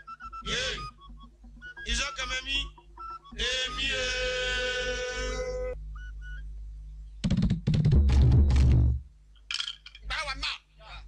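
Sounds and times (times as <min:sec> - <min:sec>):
drum hits: 0:07.2 - 0:09.0.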